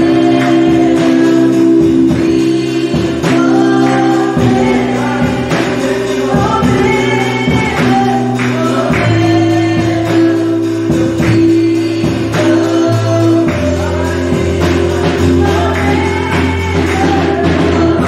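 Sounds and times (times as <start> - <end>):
band chords: 0.0 - 18.0
drum kit: 0.0 - 18.0
woman singing gospel song: 0.0 - 18.0.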